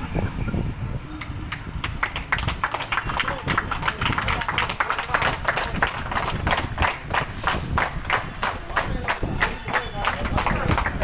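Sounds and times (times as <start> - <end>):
people clapping in rhythm: 1.2 - 11.0.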